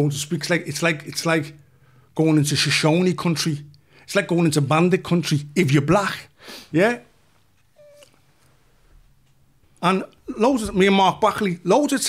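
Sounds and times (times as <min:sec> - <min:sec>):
faint squeak-like tone: 0:07.6 - 0:08.2.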